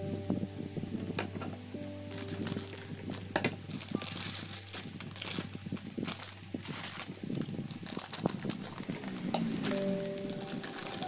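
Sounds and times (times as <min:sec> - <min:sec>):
music with held notes: 0:00.0 - 0:11.0
plastic wrapper crinkling: 0:01.2 - 0:11.0
scissors snipping plastic bag: 0:02.1 - 0:11.0.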